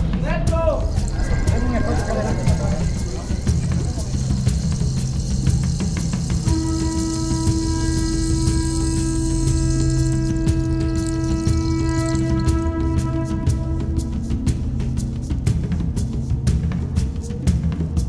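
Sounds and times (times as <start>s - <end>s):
street noise: 0.0s - 15.0s
background music with ticking beat: 0.0s - 18.0s.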